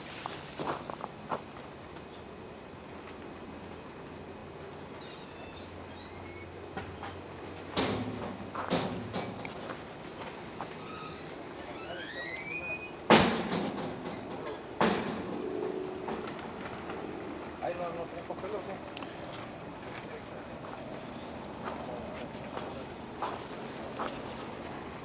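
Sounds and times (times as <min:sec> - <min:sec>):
sharp knocks with clatters: 0:06.8 - 0:09.9, 0:13.1 - 0:15.4.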